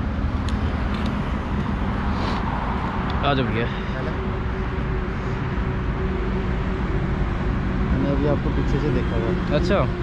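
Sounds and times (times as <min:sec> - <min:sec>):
low rumble of road traffic: 0:00.0 - 0:10.0.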